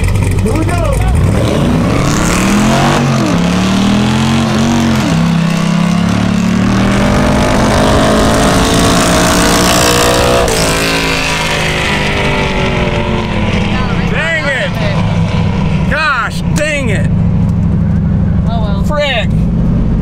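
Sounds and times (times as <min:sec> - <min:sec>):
drag car engine revving: 0:00.0 - 0:20.0.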